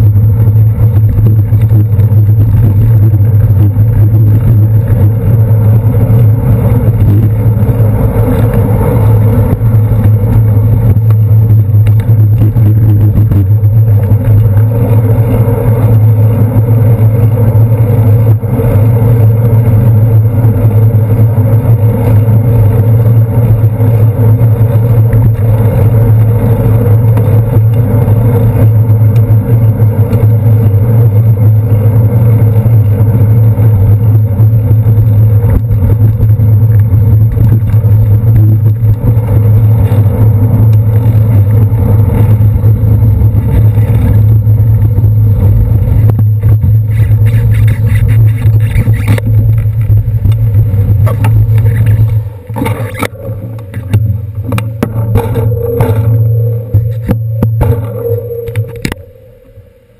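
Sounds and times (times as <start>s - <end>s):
car and bus engines: 0.0s - 59.9s
road vibration and wind drone: 0.0s - 59.9s.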